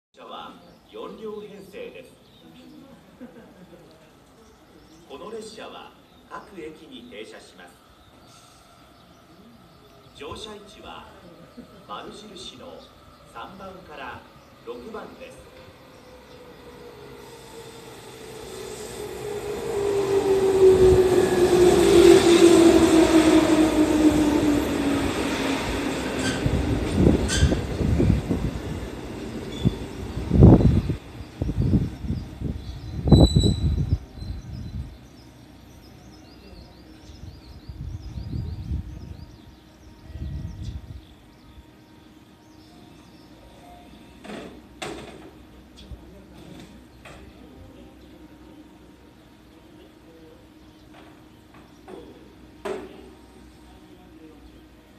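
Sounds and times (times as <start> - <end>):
wheels rumbling on rail: 12.8 - 49.6
electric train motor whine: 15.5 - 34.4
train knocks: 20.5 - 30.7, 44.2 - 45.5, 50.8 - 53.1.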